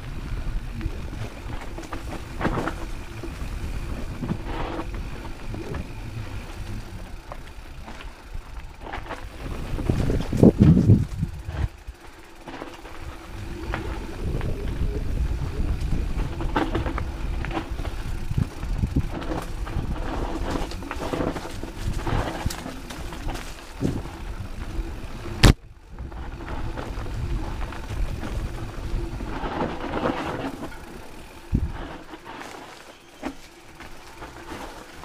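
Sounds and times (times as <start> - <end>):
bike frame and chain rattling: 0.0 - 35.0
wind and tyre noise: 0.0 - 35.0.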